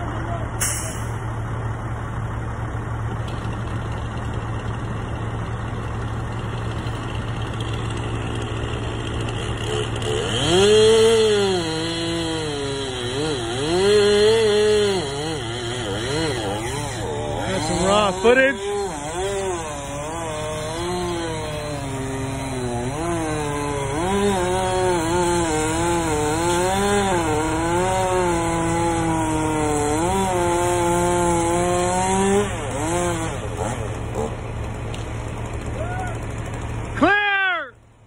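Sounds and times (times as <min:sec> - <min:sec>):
truck engine hum: 0:00.0 - 0:38.0
chainsaw cutting wood: 0:03.3 - 0:37.0.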